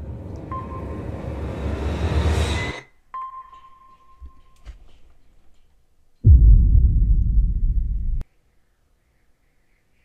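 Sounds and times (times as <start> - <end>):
held electronic ping tone: 3.2 - 4.6
rising whoosh with deep rumble: 6.2 - 8.2.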